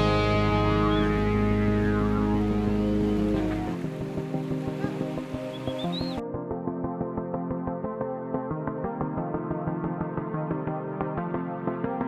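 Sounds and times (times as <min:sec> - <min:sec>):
heavy rock chord with bass: 0:00.0 - 0:03.7.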